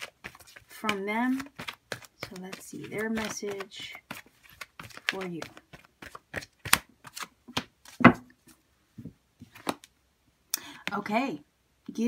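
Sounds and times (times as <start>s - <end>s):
rustle of cards: 0.0s - 8.1s
cards being shuffled: 0.0s - 8.2s, 9.4s - 9.9s.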